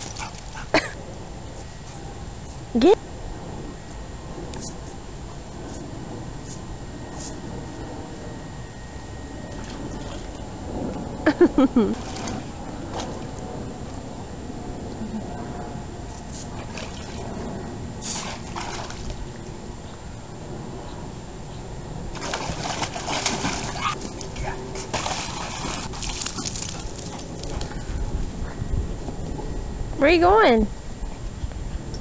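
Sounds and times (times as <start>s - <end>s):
steady low rumble: 0.0s - 32.0s
dog splashing in water: 12.0s - 13.2s, 16.6s - 17.2s, 18.0s - 19.2s, 22.2s - 27.8s.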